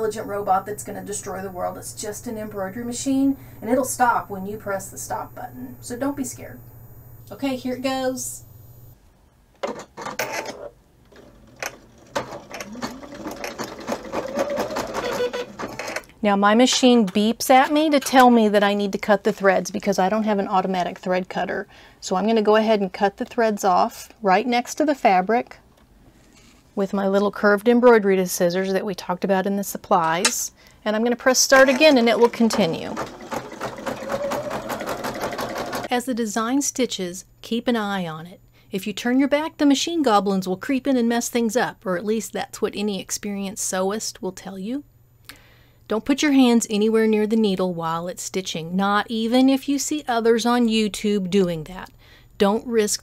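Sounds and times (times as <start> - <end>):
embroidery machine stitching: 11.1 - 16.0, 31.4 - 35.9
needle clattering rhythmically: 11.9 - 15.8, 31.5 - 35.9
motor humming: 31.6 - 35.9.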